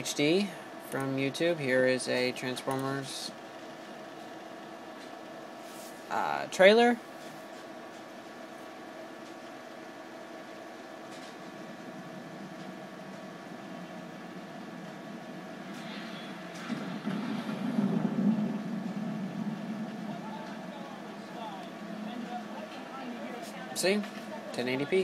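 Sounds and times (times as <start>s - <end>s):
steady hum: 0.0s - 25.0s
low rumble: 11.1s - 24.7s
film trailer soundtrack: 11.5s - 22.5s
faint voices: 17.8s - 25.0s.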